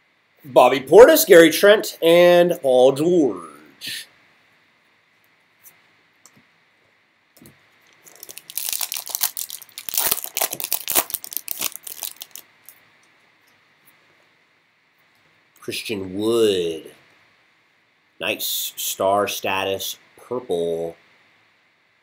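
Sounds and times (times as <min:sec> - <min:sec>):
foil pack tearing and crinkling: 0:08.0 - 0:12.4.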